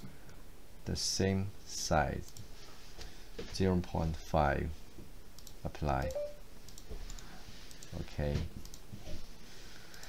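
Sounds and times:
computer mouse clicks: 5.4 - 8.0, 8.6 - 8.9.

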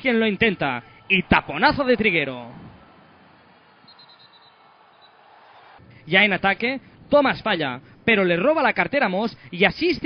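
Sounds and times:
basketball arena background noise: 0.0 - 7.6.

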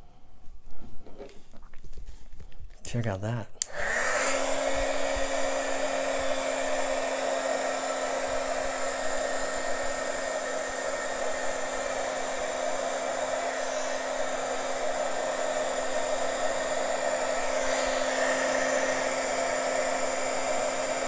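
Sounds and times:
heat gun blowing air: 3.6 - 21.0.

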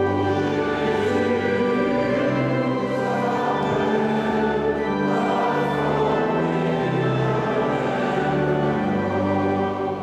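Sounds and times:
congregation singing a hymn: 0.0 - 10.0
organ: 0.0 - 10.0.

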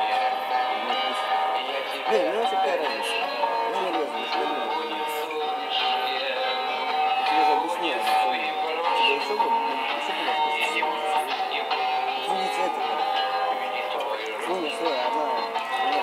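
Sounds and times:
recorded song with singing voice: 0.0 - 16.0.

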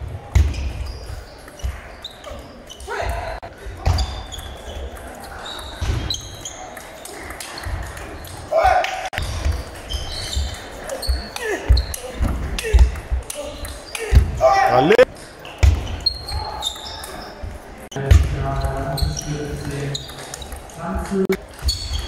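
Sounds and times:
voices in sports hall: 0.0 - 22.0.

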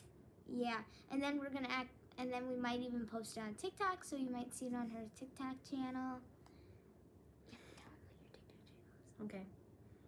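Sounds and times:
faint whisper: 7.5 - 9.5.

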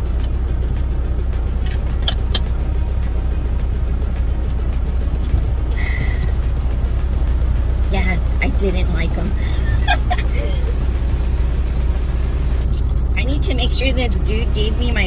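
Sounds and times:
diesel truck engine idling: 0.0 - 15.0.

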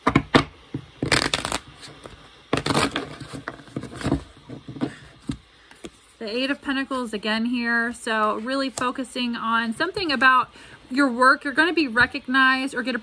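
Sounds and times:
cards being shuffled: 1.0 - 4.2.

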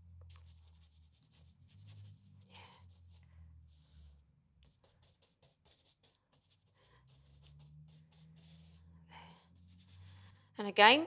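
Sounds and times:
low steady room hum: 0.0 - 11.0
paintbrush strokes on paper: 0.3 - 10.5.

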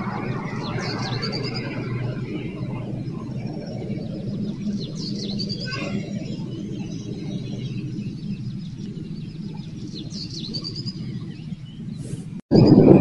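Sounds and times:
small birds chirping: 0.0 - 12.9
steady rushing noise: 0.0 - 13.0.

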